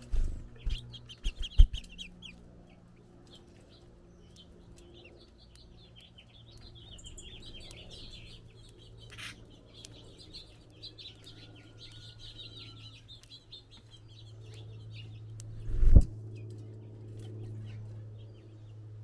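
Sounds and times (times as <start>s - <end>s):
steady low hum: 0.0s - 19.0s
finches twittering: 0.2s - 16.6s.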